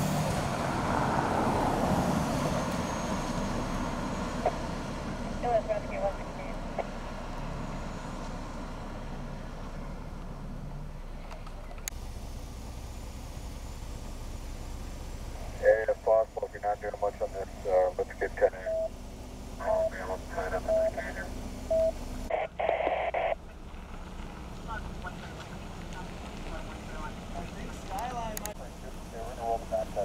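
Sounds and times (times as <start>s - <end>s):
voices over police radio: 5.4s - 6.9s, 15.5s - 18.9s, 19.6s - 21.4s, 22.3s - 23.4s, 24.7s - 30.0s
radio static burst: 15.6s - 18.9s, 19.6s - 21.4s, 22.3s - 23.4s.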